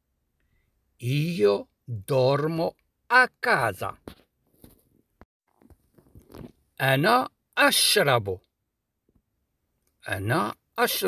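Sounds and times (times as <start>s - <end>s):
man's voice: 1.0s - 4.0s, 6.8s - 8.4s, 10.0s - 11.0s.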